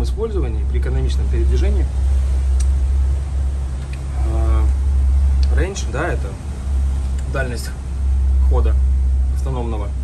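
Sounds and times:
diesel engine drone: 0.0 - 10.0.

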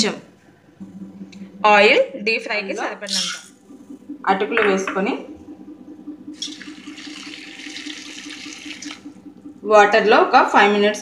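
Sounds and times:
water pouring into steel bowl: 6.4 - 9.1.

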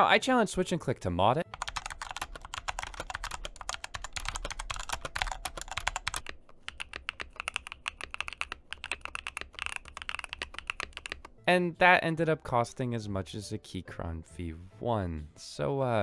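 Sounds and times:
fast typing on mechanical keyboard: 1.5 - 11.3.

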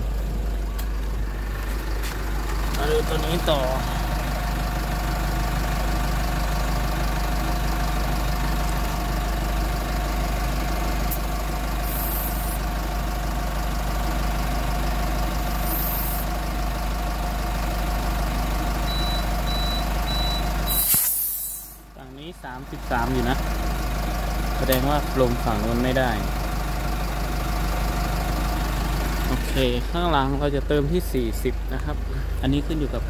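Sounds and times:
tyre inflator humming: 11.1 - 12.6, 15.5 - 16.3
air hissing: 11.8 - 12.6, 15.6 - 16.3, 20.7 - 21.8
high beeps: 18.9 - 21.6.

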